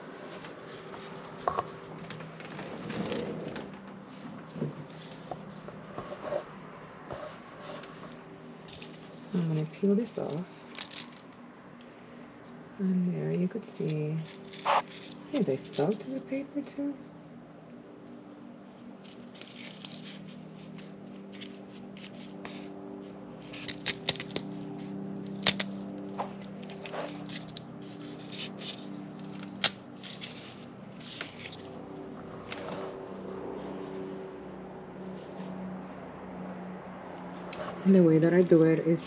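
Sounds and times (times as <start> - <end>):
low steady hum: 0.0 - 39.0
paper crinkling and scraping: 0.2 - 11.5, 13.8 - 16.2, 18.8 - 34.1
paper snaps: 23.5 - 24.6, 25.3 - 30.4.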